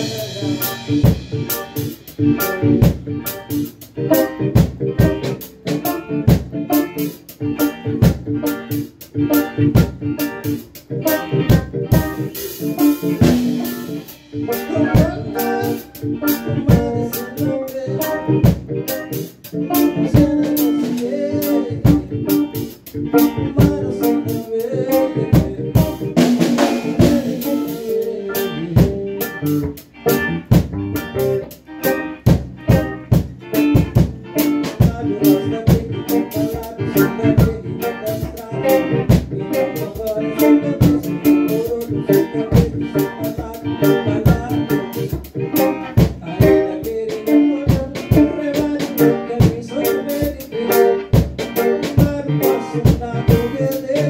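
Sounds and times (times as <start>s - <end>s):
drum kit: 0.0s - 54.0s
electric guitar: 0.0s - 54.0s
keyboard chords: 0.0s - 54.0s.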